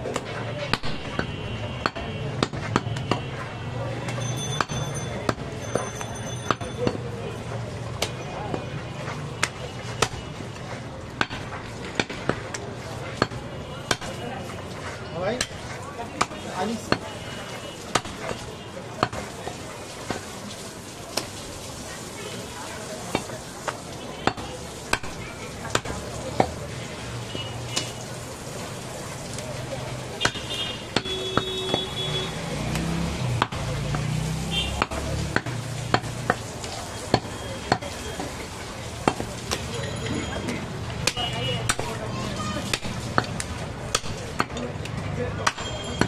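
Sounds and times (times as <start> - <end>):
cleaver chopping meat on wood: 0.1 - 3.5, 4.1 - 7.0, 7.9 - 14.2, 15.4 - 17.0, 17.8 - 18.4, 19.0 - 19.3, 24.2 - 26.6, 27.7 - 28.0, 30.2 - 36.5, 37.1 - 38.4, 39.0 - 39.7, 41.0 - 42.0, 42.6 - 46.0.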